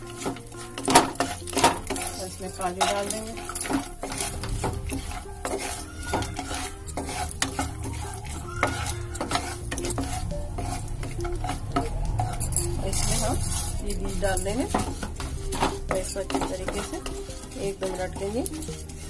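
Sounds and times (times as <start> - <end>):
light sizzle: 0.0 - 19.0
nuts clattering in pan: 0.0 - 19.0
spatula scraping and tapping pan: 0.0 - 19.0.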